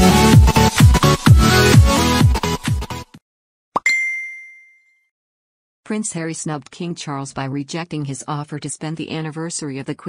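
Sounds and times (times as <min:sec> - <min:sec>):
bell-like ding: 0:03.8 - 0:05.1.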